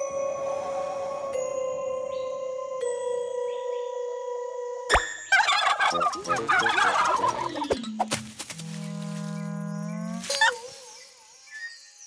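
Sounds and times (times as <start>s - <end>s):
cartoon bird gobbling and squawking: 5.4s - 7.8s.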